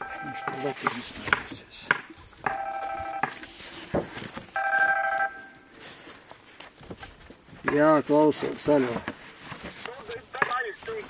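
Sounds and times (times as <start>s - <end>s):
electronic ringing tone: 0.0s - 0.8s, 2.5s - 3.3s, 4.6s - 5.7s.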